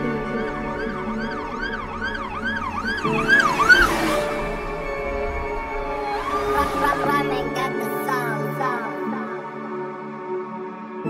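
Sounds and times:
wailing siren effect: 0.0s - 7.6s
held synth chords: 0.0s - 10.9s
rising whoosh: 0.1s - 8.1s.

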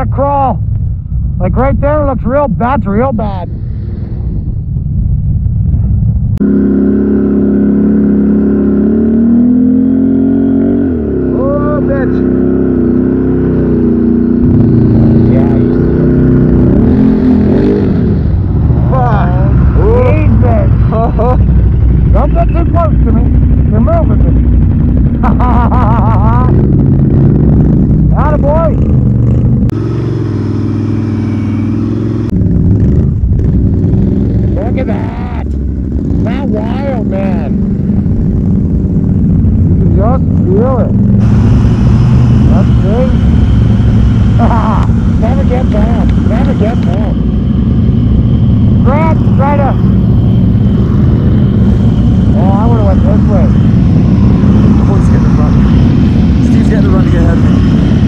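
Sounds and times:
atv engines revving: 6.4s - 58.0s.

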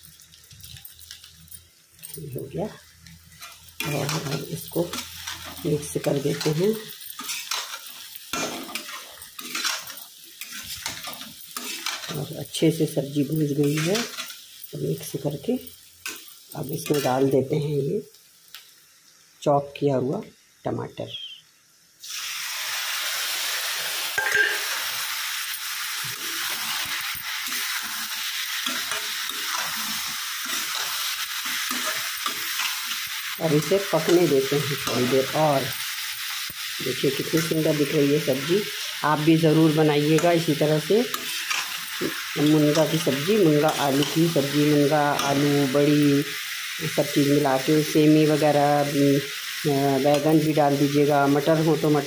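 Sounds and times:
oil sizzling: 0.0s - 52.0s
spoon stirring and scraping pan: 3.0s - 12.6s, 13.2s - 15.1s, 15.8s - 17.3s, 24.2s - 39.0s, 40.0s - 45.5s.

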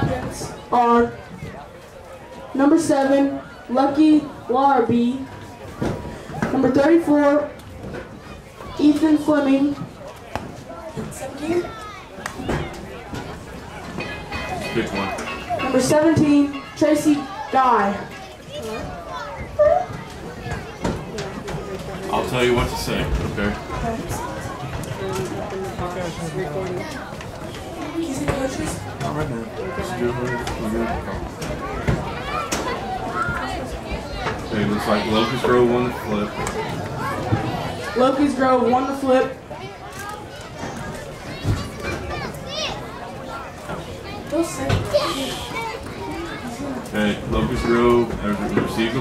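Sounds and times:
children and adults talking: 0.0s - 49.0s.

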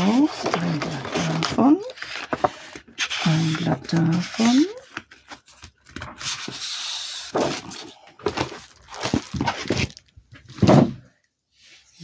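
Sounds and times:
cardstock and plastic wrapping rustling: 0.0s - 11.0s.

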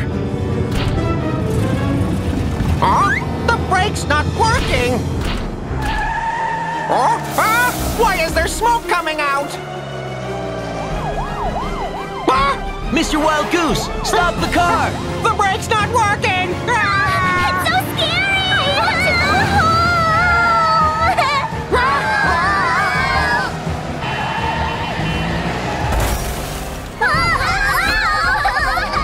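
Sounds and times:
background music: 0.0s - 29.0s
cartoon police siren: 10.5s - 14.4s.

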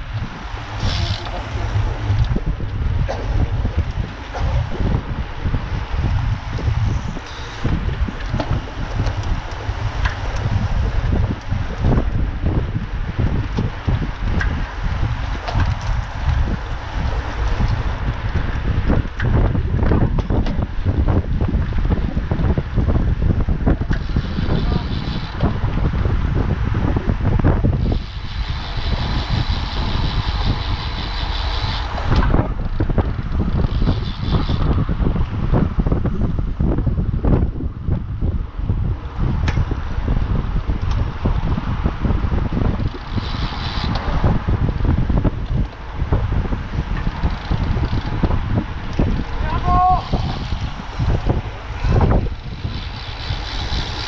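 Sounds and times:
road and tyre noise: 0.0s - 54.0s
wind buffeting microphone: 0.0s - 54.0s
bike freewheel ticking: 0.1s - 2.7s, 23.8s - 26.4s, 27.4s - 35.3s, 42.2s - 54.0s.

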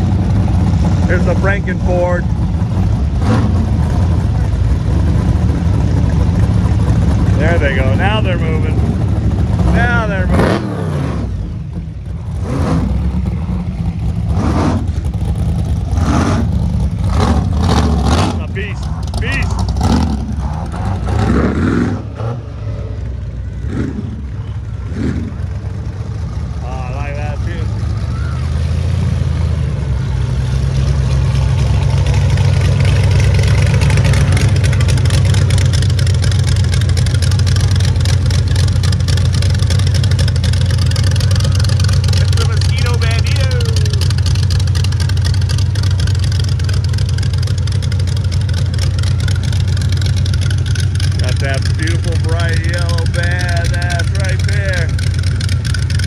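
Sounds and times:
engine idling rumble: 0.0s - 56.0s
engines revving: 0.0s - 56.0s.

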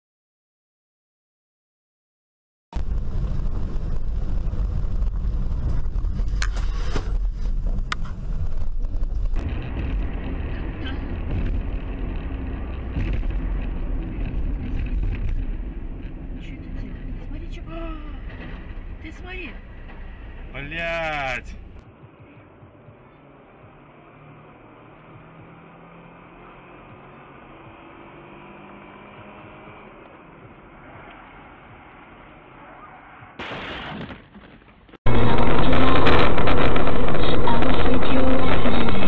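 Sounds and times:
car road noise: 2.8s - 33.5s, 34.4s - 39.0s
truck road and engine rumble: 2.8s - 33.7s, 35.1s - 39.0s.

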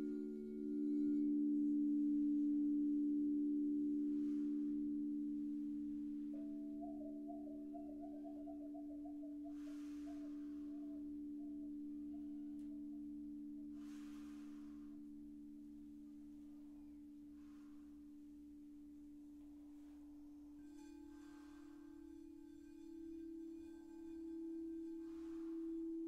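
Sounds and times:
singing bowls ringing: 0.0s - 16.0s, 20.4s - 26.0s
soft swishing: 13.8s - 18.4s
wand rubbing bowl rim: 20.6s - 26.0s.

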